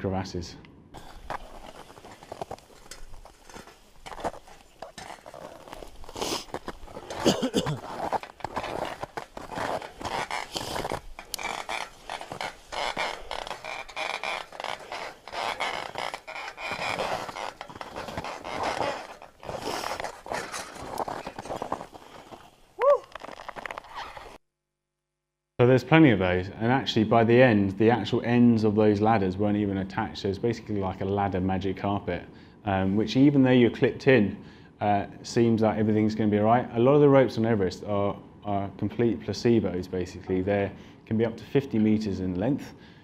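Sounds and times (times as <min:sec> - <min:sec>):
crampons scraping on metal rungs: 0:01.0 - 0:22.4
person coughing: 0:07.1 - 0:08.0.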